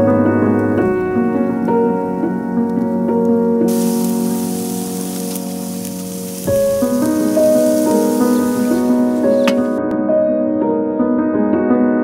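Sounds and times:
soft piano music: 0:00.0 - 0:12.0
food sizzling on a grill: 0:03.7 - 0:09.8.

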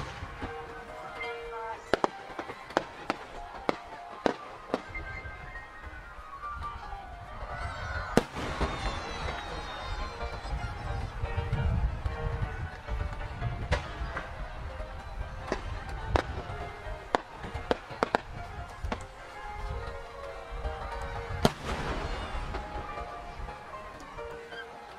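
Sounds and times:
faint fireworks pops: 0:00.0 - 0:06.8, 0:08.2 - 0:09.7, 0:11.5 - 0:20.0, 0:20.6 - 0:24.7
background music with held tones: 0:00.0 - 0:24.9
fireworks bang: 0:08.2 - 0:09.6, 0:21.4 - 0:22.8.

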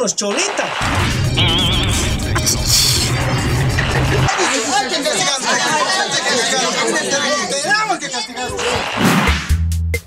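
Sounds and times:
excited chatter of voices: 0:02.3 - 0:08.7.

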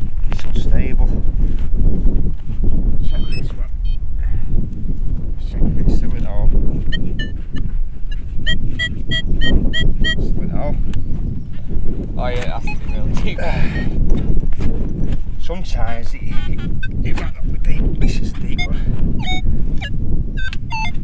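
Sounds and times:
wind buffeting microphone: 0:00.0 - 0:21.0
metal detector beeping: 0:03.1 - 0:04.0, 0:06.9 - 0:10.3, 0:12.4 - 0:13.9, 0:16.4 - 0:17.2, 0:18.5 - 0:21.0.

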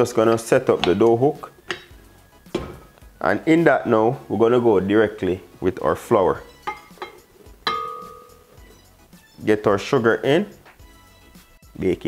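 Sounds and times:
soft knock: 0:02.5 - 0:02.9
cup clinking on glass bowl: 0:06.5 - 0:08.5.

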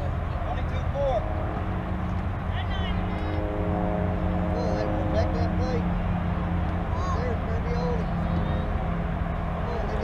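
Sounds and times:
low rumble and hum: 0:00.0 - 0:10.0.

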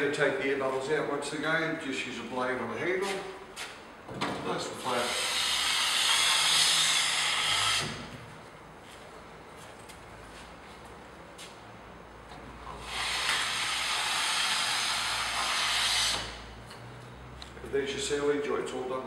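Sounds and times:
taping tool scraping plasterboard: 0:04.8 - 0:08.1, 0:12.8 - 0:16.4.

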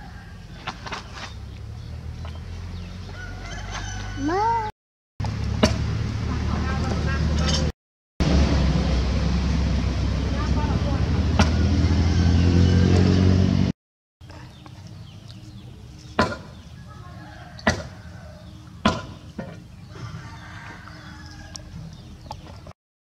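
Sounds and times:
rooster crowing: 0:00.0 - 0:00.6, 0:03.0 - 0:04.7, 0:11.4 - 0:12.9, 0:16.9 - 0:18.6, 0:19.9 - 0:21.8.

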